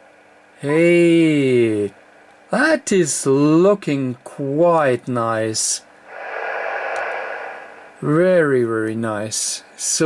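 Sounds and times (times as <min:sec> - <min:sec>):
radio receiver hiss: 0:06.1 - 0:09.0.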